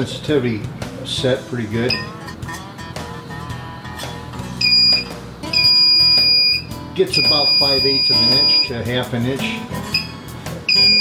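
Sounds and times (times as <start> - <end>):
metal detector alert tone: 1.9 - 2.4, 4.6 - 8.8, 9.9 - 11.0.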